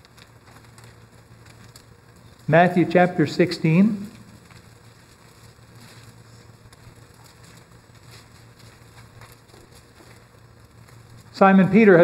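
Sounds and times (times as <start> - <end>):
pages being turned: 0.0 - 2.8, 3.6 - 11.3
low room hum: 0.0 - 12.0.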